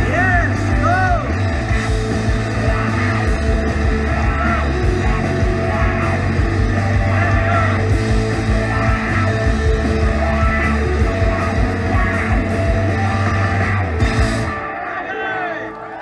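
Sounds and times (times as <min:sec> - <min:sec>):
rock band playing: 0:00.0 - 0:16.0.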